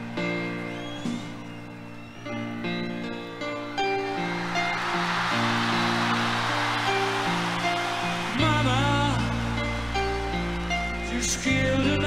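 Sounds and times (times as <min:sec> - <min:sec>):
crowd cheering: 0:00.0 - 0:12.0
slow piano intro: 0:00.0 - 0:12.0
man singing: 0:08.3 - 0:09.8, 0:10.9 - 0:12.0.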